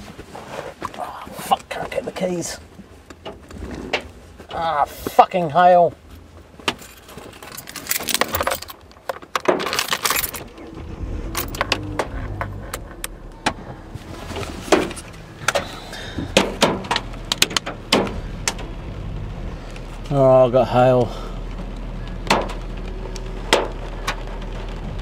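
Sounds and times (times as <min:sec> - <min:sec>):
car keys jangling: 0:06.7 - 0:13.2
low steady hum: 0:09.7 - 0:25.0.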